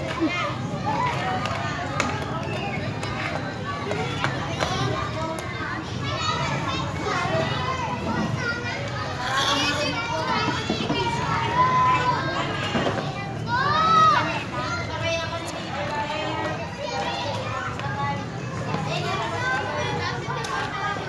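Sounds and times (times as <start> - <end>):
children chattering and calling out: 0.0 - 21.0.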